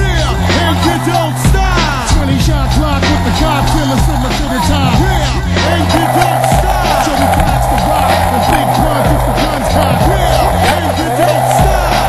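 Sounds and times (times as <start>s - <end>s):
hip hop music with heavy bass: 0.0s - 12.0s
skateboard wheels rolling on pavement: 0.2s - 12.0s.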